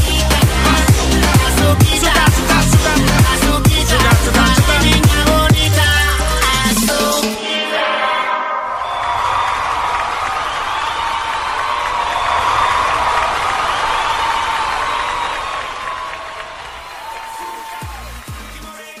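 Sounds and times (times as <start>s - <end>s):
crowd cheering and applauding: 0.0s - 5.9s, 8.7s - 19.0s
music: 0.0s - 8.7s, 17.0s - 19.0s.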